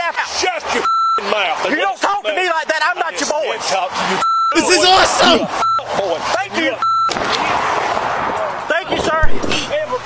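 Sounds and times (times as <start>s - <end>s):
man speaking: 0.0s - 6.8s, 8.8s - 10.0s
outdoor rushing noise: 0.0s - 10.0s
censor bleep: 0.8s - 1.2s, 4.2s - 4.8s, 5.6s - 5.9s, 6.8s - 7.2s.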